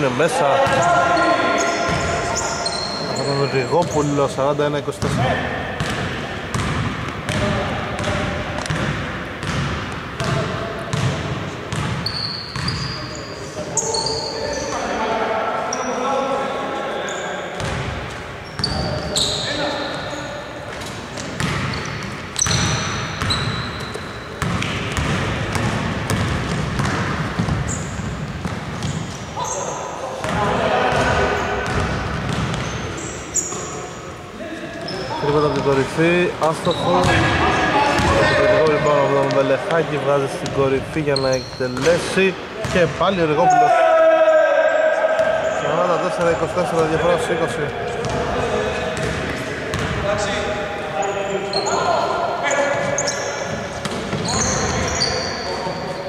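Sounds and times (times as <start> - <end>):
players' voices: 0.0 - 56.0
sneaker squeaks: 0.6 - 4.4, 10.2 - 15.0, 16.9 - 34.1, 34.7 - 39.5, 40.4 - 43.7, 47.8 - 50.4, 51.0 - 56.0
basketball bouncing: 5.8 - 12.0, 12.6 - 12.8, 21.2 - 29.1, 30.2 - 32.8, 38.0 - 38.2, 48.0 - 48.3, 49.0 - 50.0, 53.5 - 54.9.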